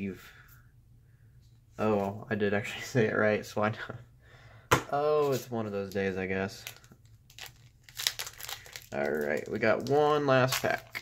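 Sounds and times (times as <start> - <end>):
foil wrapper crinkling: 6.6 - 11.0.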